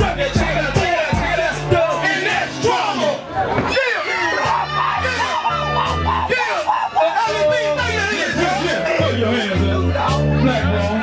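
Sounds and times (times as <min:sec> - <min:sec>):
hip hop beat through speakers: 0:00.0 - 0:11.0
rappers shouting: 0:00.0 - 0:11.0.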